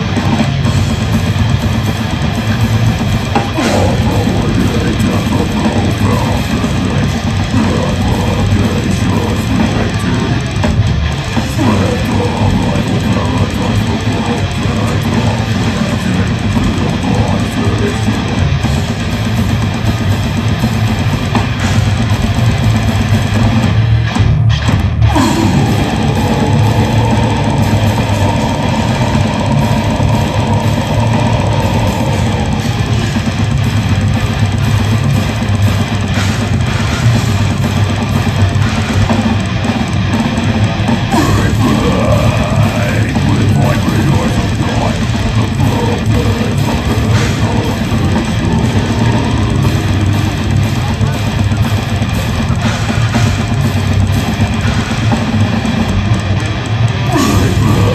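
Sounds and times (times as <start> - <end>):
death metal band playing live: 0.0 - 57.9
long held guitar line: 0.0 - 57.9.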